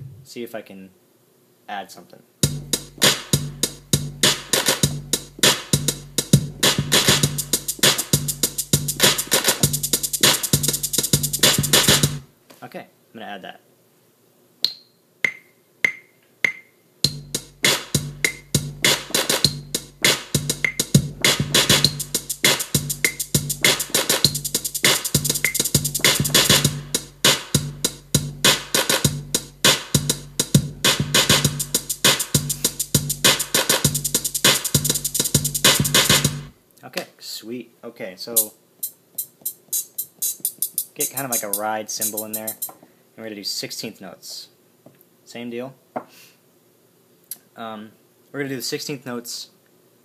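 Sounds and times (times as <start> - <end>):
deep steady bass: 2.4 - 12.2, 17.0 - 36.5
programmed drum loop: 2.4 - 12.3, 15.2 - 36.6, 38.3 - 42.8
metronome clicks: 14.6 - 17.3, 20.6 - 20.9, 25.3 - 26.3, 38.8 - 42.7.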